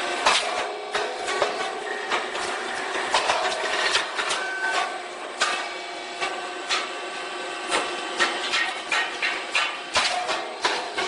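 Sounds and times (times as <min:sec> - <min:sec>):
machine pops and clacks: 0:00.2 - 0:02.5, 0:03.1 - 0:06.9, 0:07.7 - 0:11.0.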